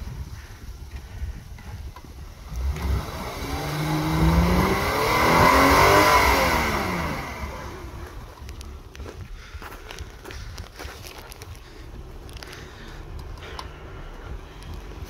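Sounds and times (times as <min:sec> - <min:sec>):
suv engine revving: 0:00.0 - 0:15.0.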